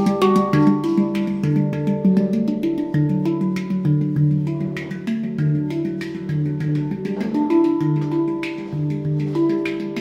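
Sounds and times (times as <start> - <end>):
handpan notes ringing: 0.0 - 10.0.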